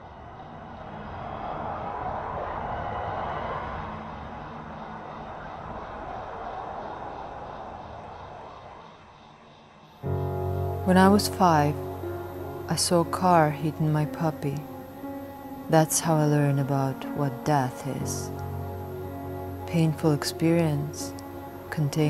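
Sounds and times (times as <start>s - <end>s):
rushing wind: 0.0s - 9.6s.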